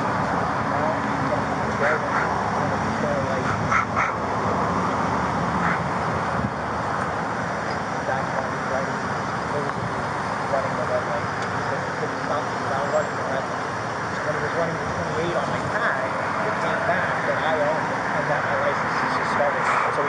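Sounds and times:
faint indistinct voices: 0.0s - 5.9s, 7.5s - 20.0s
road traffic noise: 0.0s - 20.0s.

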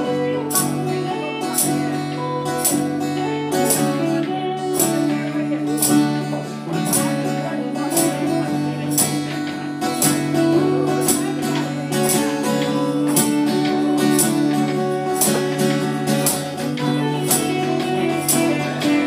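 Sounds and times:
steady beat: 0.0s - 19.0s
strummed acoustic guitars: 0.0s - 19.0s.

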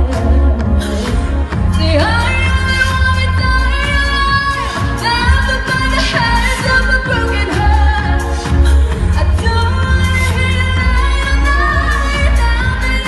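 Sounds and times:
heavy pulsing bass beat: 0.0s - 13.0s
woman singing pop song: 0.0s - 13.0s.

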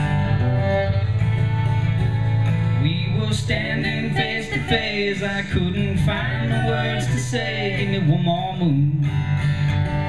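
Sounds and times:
bowed fiddle: 0.0s - 8.3s
bass guitar: 0.0s - 10.0s
strummed acoustic guitar: 0.0s - 10.0s.

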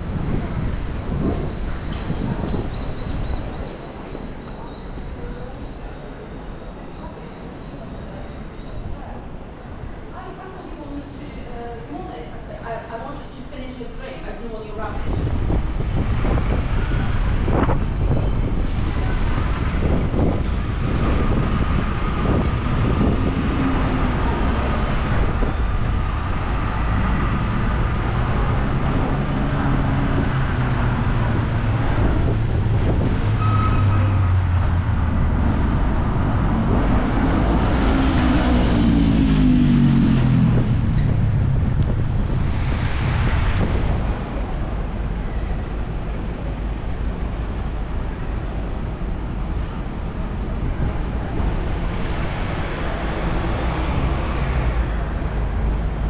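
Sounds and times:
bus and car engines passing: 0.0s - 56.0s.

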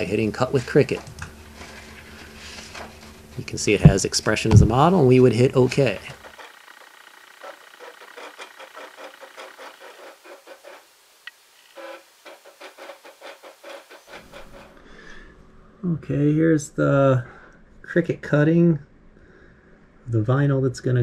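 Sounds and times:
cutting machine motors buzzing: 0.4s - 14.6s.

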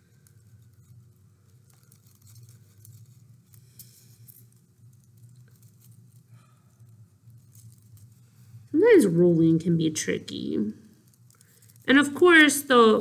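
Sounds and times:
paper rustling and crinkling: 0.0s - 8.7s
low room hum: 0.0s - 13.0s.

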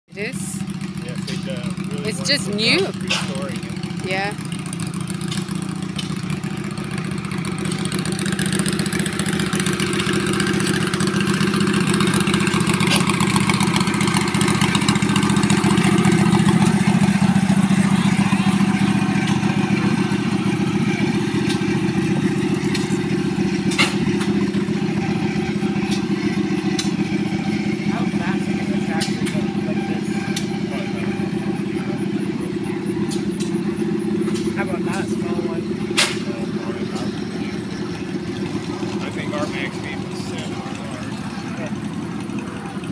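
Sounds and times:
tractor engine idling: 0.1s - 42.9s.

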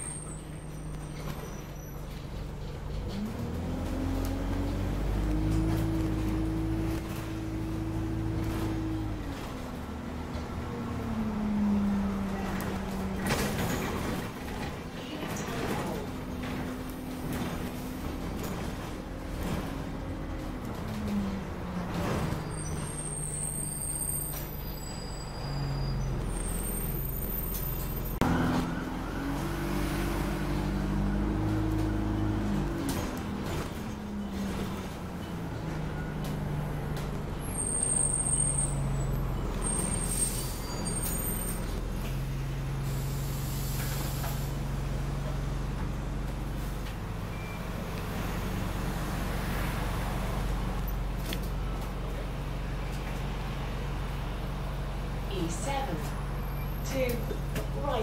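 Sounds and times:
bus diesel engine: 0.0s - 58.0s.

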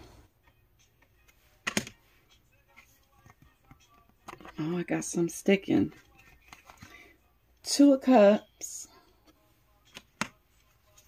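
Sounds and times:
card slapped on deck: 1.6s - 2.0s.

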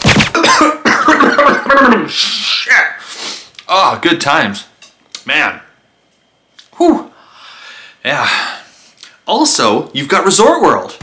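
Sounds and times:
man coughing hard: 0.3s - 2.1s.

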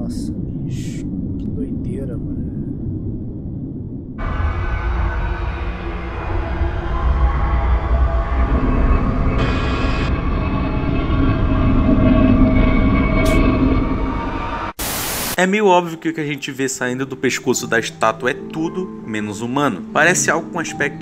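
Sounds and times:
low rumbling drone: 0.0s - 15.4s
harsh static burst: 14.8s - 15.4s.

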